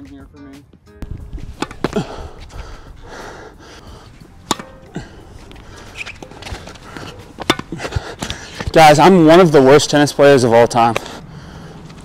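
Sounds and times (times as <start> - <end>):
shuffling footsteps: 1.0 - 9.2
tennis ball struck by rackets: 1.4 - 2.0, 4.3 - 4.9, 5.5 - 8.7.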